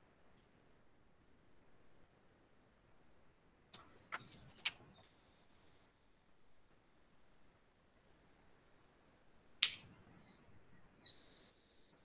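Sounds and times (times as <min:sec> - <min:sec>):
sharp click: 0:09.6 - 0:09.9.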